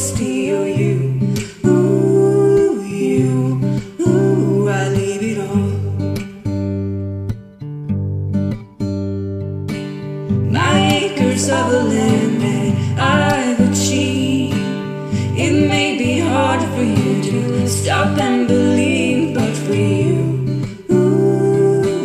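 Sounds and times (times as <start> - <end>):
strummed acoustic guitar chords: 0.0 - 22.0.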